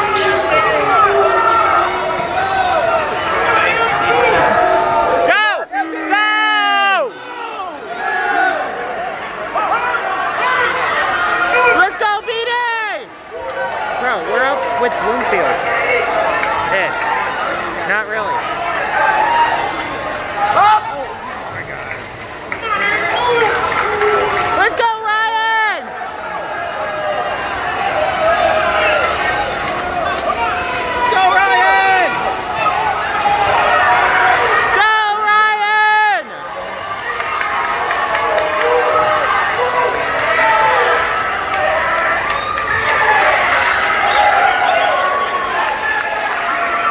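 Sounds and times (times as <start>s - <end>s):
crowd yelling and cheering: 0.0s - 46.9s.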